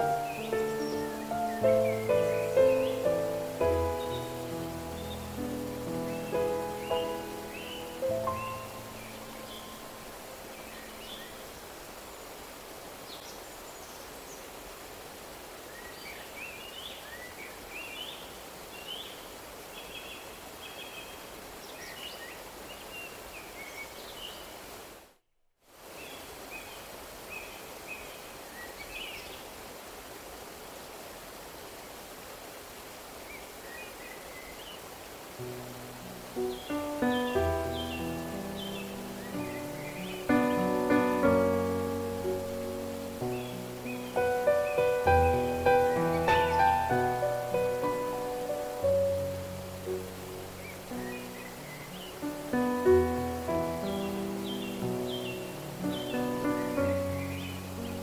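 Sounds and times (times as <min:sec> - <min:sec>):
soft piano music: 0:00.0 - 0:11.4, 0:35.4 - 0:58.0
birds chirping: 0:00.0 - 0:14.6, 0:35.5 - 0:58.0
stream rushing over rocks: 0:00.0 - 0:58.0.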